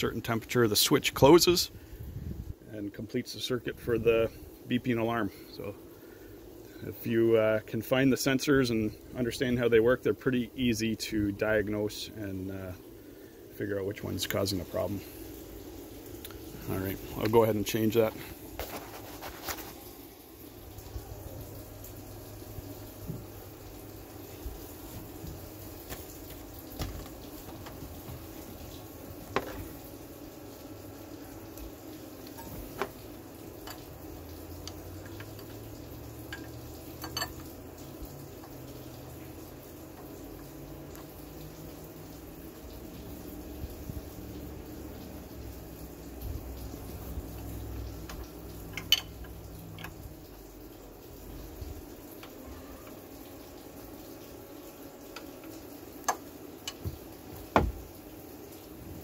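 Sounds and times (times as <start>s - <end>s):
running water hissing: 0.0s - 59.0s.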